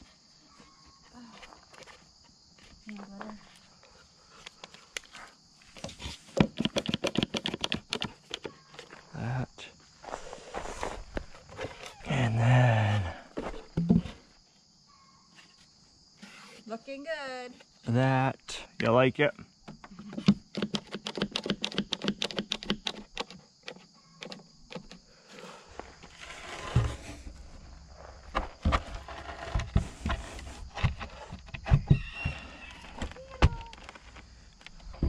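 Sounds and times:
wood knocks and handling noises: 5.7s - 9.0s, 13.4s - 14.3s, 28.3s - 35.0s.

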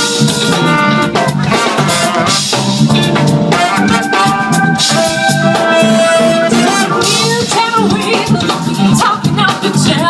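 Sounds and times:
live funk band playing: 0.0s - 10.0s
horns holding long note: 3.5s - 7.1s.

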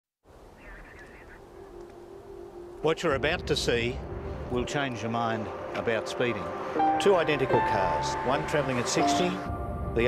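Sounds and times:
low wind rumble: 0.3s - 10.0s
warbling bird call: 0.5s - 2.2s.

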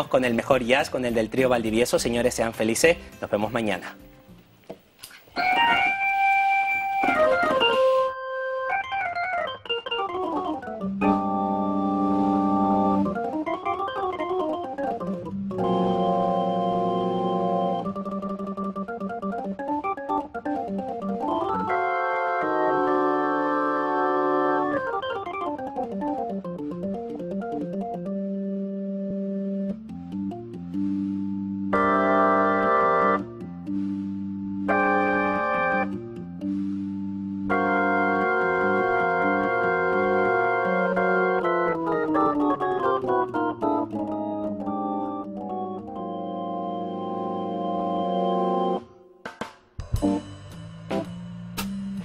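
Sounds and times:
electronic organ jazz solo: 5.4s - 49.1s.

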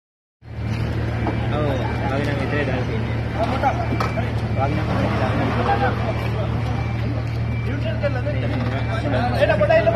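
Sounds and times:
crowd of people talking: 0.4s - 9.9s
vehicle engine idling: 0.4s - 9.9s.

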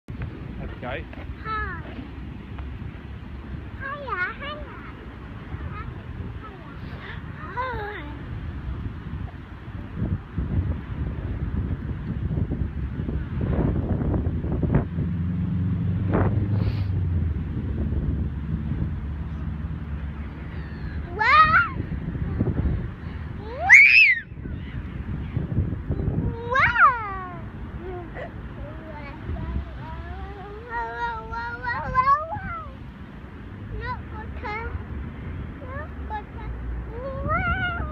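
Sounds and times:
wind rumble on microphone: 0.1s - 37.9s
toddler squealing: 23.4s - 24.3s
high-pitched swing squeal: 23.4s - 25.4s.

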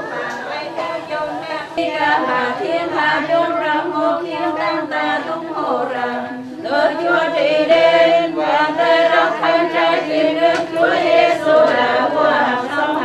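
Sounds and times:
group chanting a prayer: 0.0s - 13.0s.

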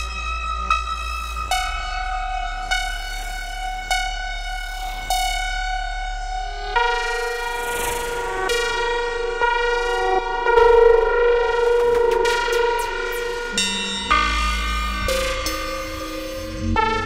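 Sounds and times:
buzzy horn-like synthesizer tones: 10.6s - 17.0s
low hum: 13.2s - 17.0s.

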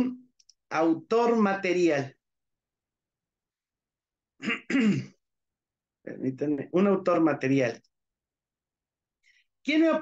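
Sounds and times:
man clearing his throat: 4.4s - 5.2s.

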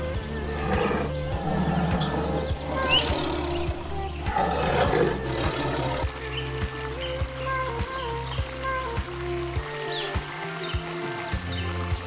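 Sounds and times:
tiger calling: 0.0s - 6.0s
background music with steady beat: 0.0s - 12.0s.

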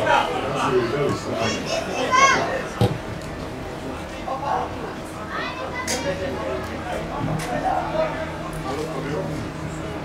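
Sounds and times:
voices calling and shouting: 0.0s - 8.6s.

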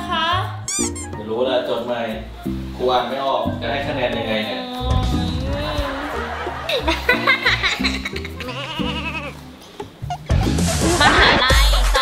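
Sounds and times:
comic goat bleat effect: 0.7s - 1.2s, 8.3s - 9.4s.

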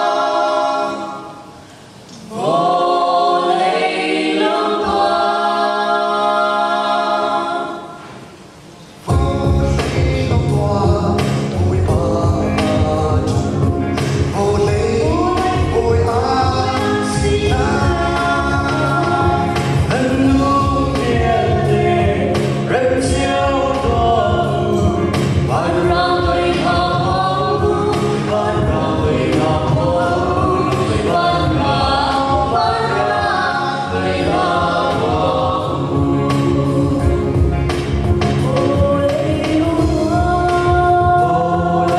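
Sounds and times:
choir singing gospel song: 0.0s - 41.9s
instrumental backing with beat: 9.0s - 41.9s.

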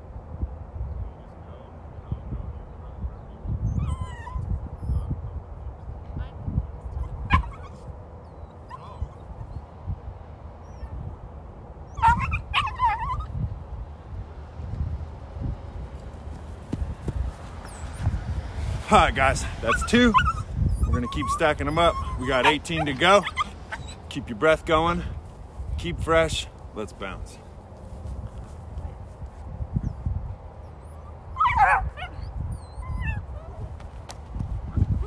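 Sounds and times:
dog whining and yipping: 3.7s - 5.1s, 6.9s - 9.6s, 10.6s - 11.0s, 11.9s - 13.4s, 17.6s - 18.1s, 19.7s - 24.1s, 30.6s - 33.8s.

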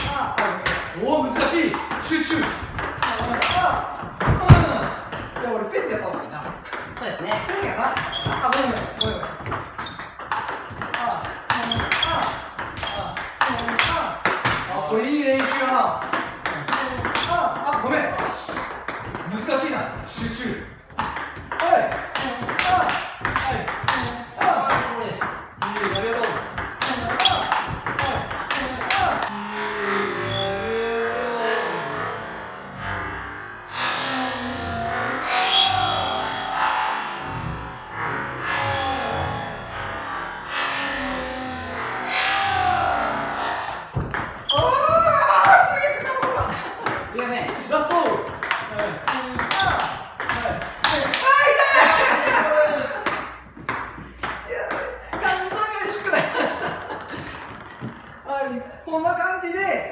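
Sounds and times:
ball bouncing on table: 0.0s - 14.7s, 15.3s - 29.3s, 43.9s - 51.3s, 56.7s - 58.2s
table tennis ball hitting bats: 0.0s - 29.6s, 39.7s - 58.7s.

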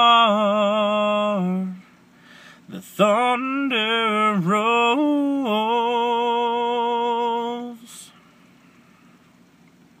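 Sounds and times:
man singing unaccompanied: 0.0s - 1.9s, 2.7s - 8.2s.

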